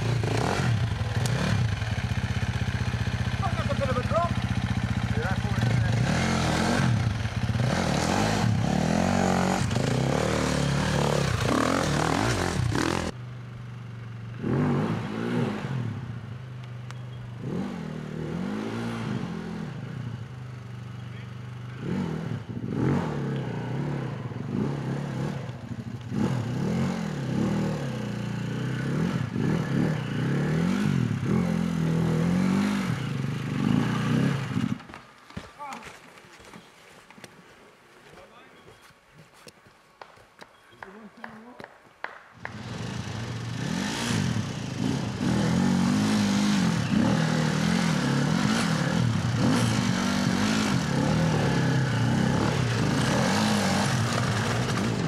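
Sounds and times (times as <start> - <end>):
dirt bike engines revving: 0.0 - 13.2, 13.8 - 35.0, 42.4 - 55.0.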